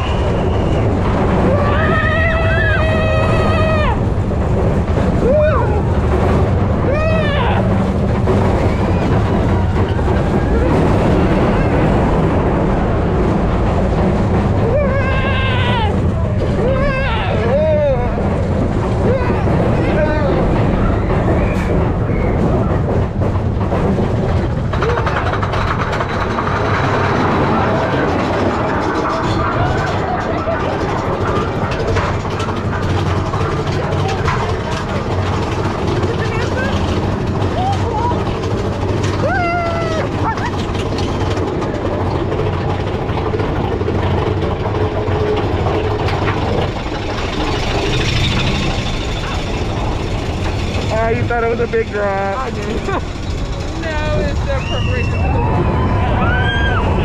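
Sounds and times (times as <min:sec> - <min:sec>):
roller coaster rumbling on track: 0:00.0 - 0:57.0.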